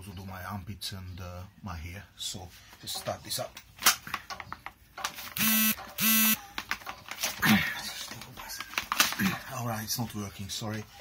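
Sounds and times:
electric chainsaw buzzing: 5.4 - 6.4.

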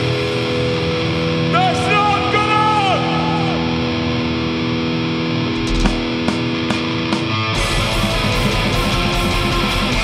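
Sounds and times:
distorted electric guitars: 0.0 - 10.0
metal band with fast drumming: 5.4 - 10.0
drum strikes: 5.5 - 7.9.

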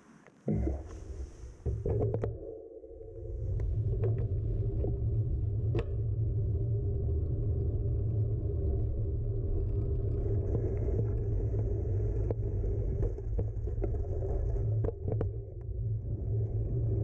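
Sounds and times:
bicycle tyres on asphalt: 3.4 - 17.0.

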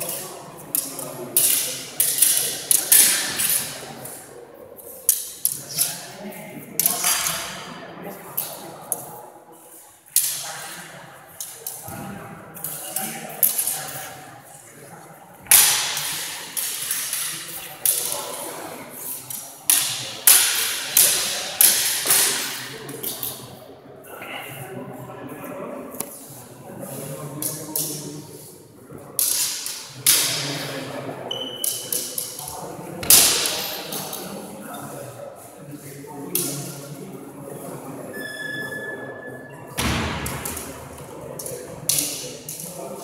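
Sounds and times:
sharp knock echoing in hall: 33.0 - 33.6, 39.7 - 41.0.

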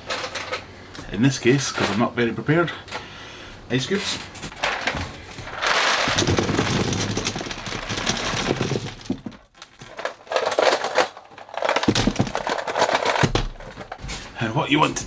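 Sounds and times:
ice cubes clattering: 4.6 - 13.8.

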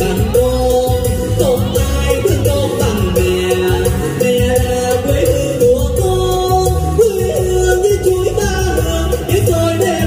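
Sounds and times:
backing music with beat: 0.0 - 10.0
man singing: 0.0 - 10.0.

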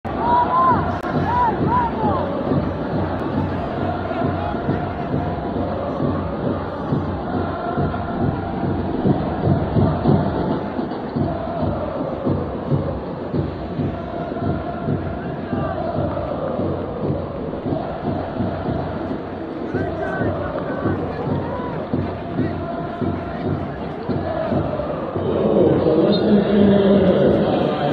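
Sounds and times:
stadium crowd cheering: 0.0 - 27.9.

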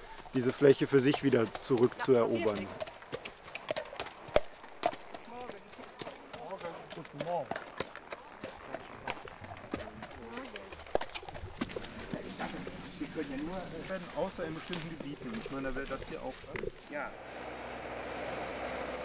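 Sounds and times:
horse hooves clopping on dirt: 0.0 - 17.2.

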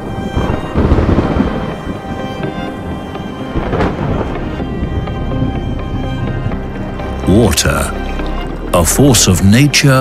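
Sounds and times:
thunder rumbling: 0.0 - 7.2
steady rain: 0.0 - 9.0
loud thunder clap: 0.4 - 2.5, 3.6 - 4.5.

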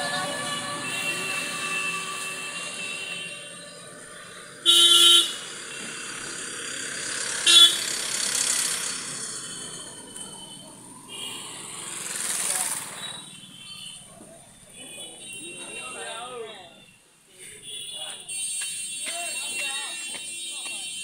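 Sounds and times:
vehicle horn honking: 0.0 - 3.9, 4.6 - 5.8, 7.4 - 7.8
passing vehicles: 0.0 - 16.8.

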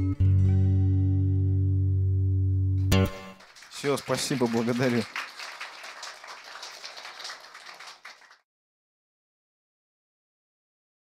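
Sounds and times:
audience applauding: 3.0 - 8.4.

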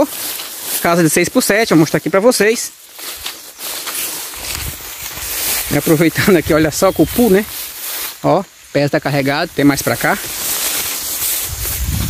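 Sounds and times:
steady outdoor hiss: 0.0 - 12.0
wind rumbling on microphone: 4.4 - 7.8, 9.4 - 12.0.

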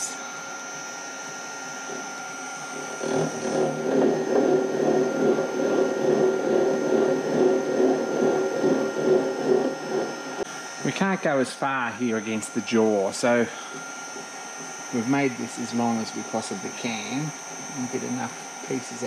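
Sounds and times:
milling spindle running: 0.0 - 19.0
gear cutter cutting metal: 1.3 - 19.0.

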